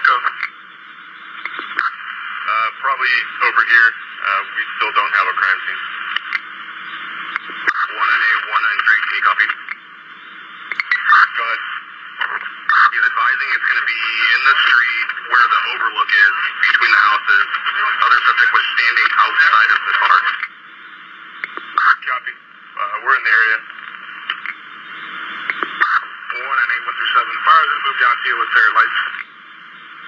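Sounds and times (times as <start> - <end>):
radio static hiss: 0.0 - 30.0
voices over two-way radio: 0.0 - 30.0.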